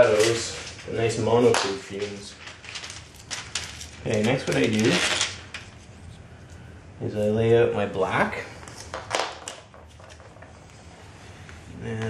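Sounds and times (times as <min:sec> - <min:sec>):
plastic film rustling: 0:00.0 - 0:11.5
faint room hiss: 0:00.0 - 0:12.0.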